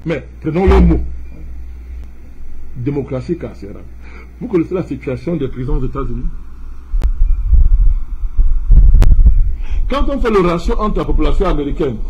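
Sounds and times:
microphone handling noise: 0.7 - 2.9, 7.0 - 9.6.

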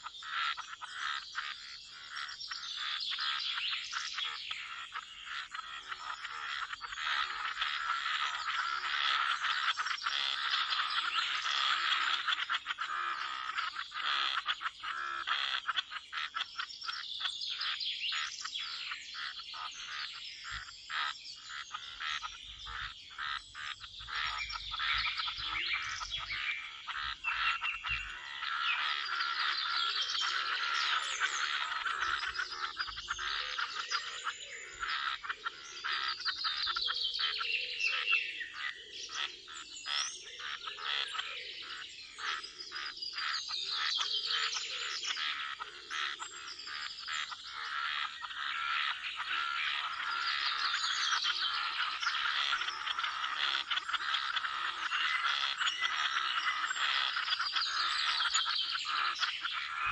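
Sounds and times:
birds singing: 0.0 - 59.9
frogs croaking: 0.0 - 59.9.

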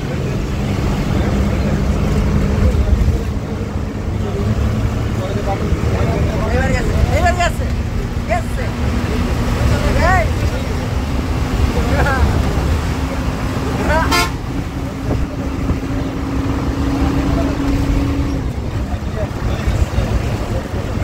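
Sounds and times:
bus engine and road rumble: 0.0 - 21.0.

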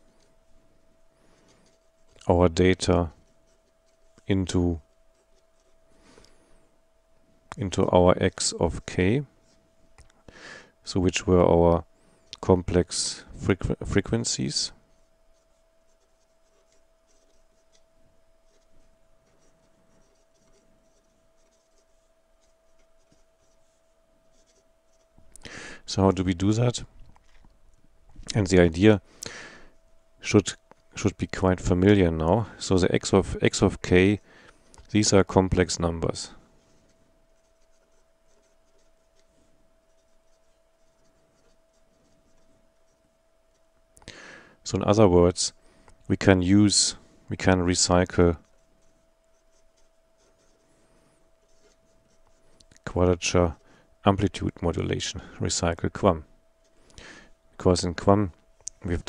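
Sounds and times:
faint steady hum: 0.0 - 59.0
pen scratching on paper: 5.1 - 5.8, 14.9 - 25.1, 36.6 - 43.7, 48.4 - 52.6.

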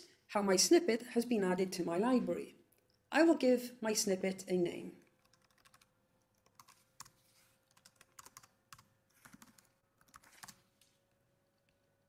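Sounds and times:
computer keyboard keystrokes: 5.2 - 10.6.

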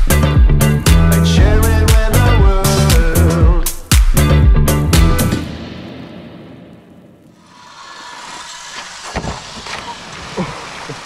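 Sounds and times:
music: 0.0 - 7.0
water noise: 5.4 - 11.0
water splashing: 6.8 - 11.0.

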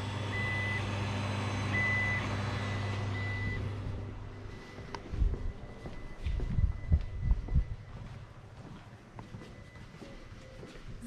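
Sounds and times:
low mechanical hum: 0.0 - 11.0
high electronic beeps: 1.8 - 3.7.

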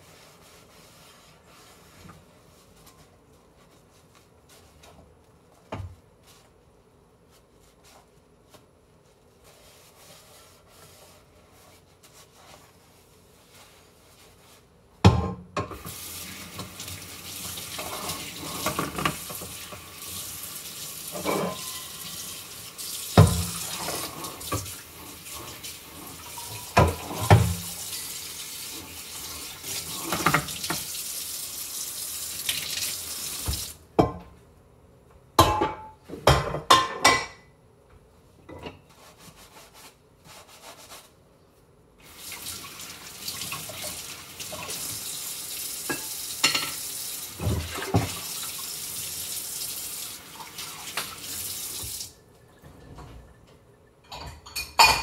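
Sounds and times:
faucet water running: 15.8 - 33.8, 42.0 - 52.2.

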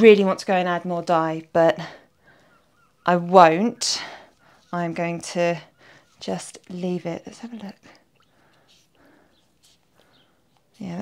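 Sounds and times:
soft squelches of wet wool: 1.4 - 11.0.

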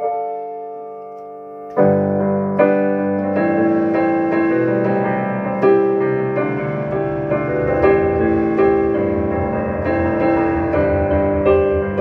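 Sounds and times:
piano chords on digital keyboard: 0.0 - 12.0.

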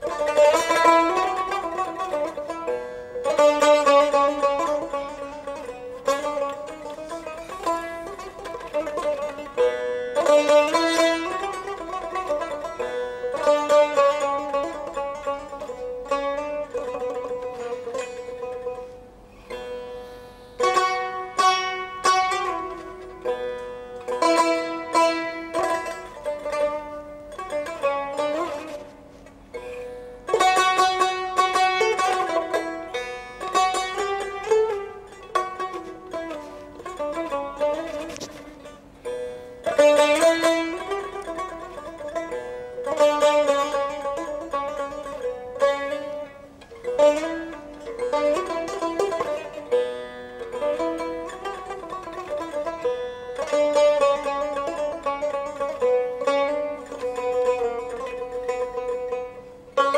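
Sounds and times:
plucked long-necked lute: 0.0 - 59.9.

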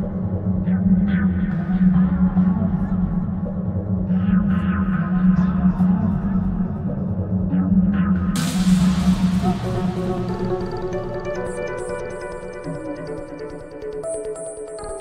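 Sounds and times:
glitchy electronic music: 8.4 - 15.0.

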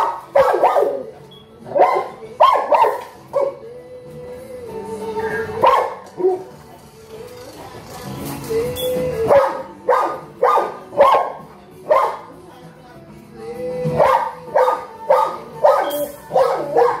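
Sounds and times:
dog barking: 0.0 - 1.1, 1.7 - 3.6, 5.6 - 6.5, 9.3 - 12.3, 14.0 - 17.0.

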